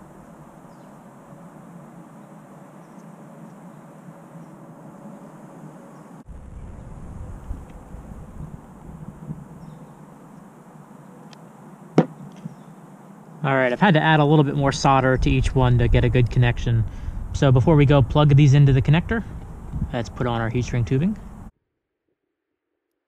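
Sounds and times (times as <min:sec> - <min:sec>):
wind rumble on microphone: 0:06.3 - 0:10.0, 0:14.4 - 0:21.5.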